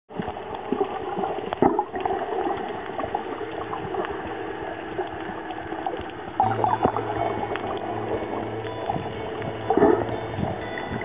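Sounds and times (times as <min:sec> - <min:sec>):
clicks and crackles underwater: 0:00.1 - 0:07.7
faint steady hum: 0:00.1 - 0:11.0
muffled underwater wash: 0:00.1 - 0:11.0.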